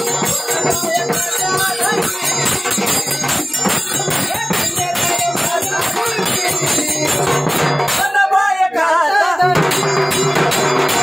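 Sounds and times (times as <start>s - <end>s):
rapid percussion beat: 0.0s - 11.0s.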